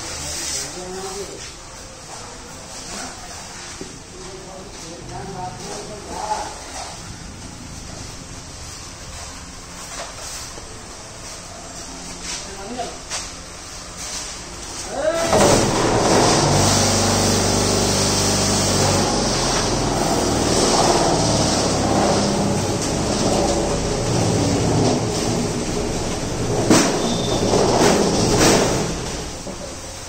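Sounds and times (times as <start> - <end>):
machinery humming: 13.4 - 30.0.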